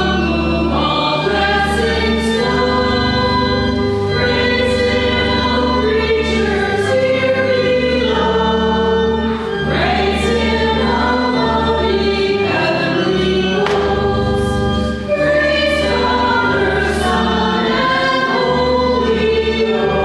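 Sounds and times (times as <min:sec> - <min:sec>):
church choir singing a hymn: 0:00.0 - 0:20.0.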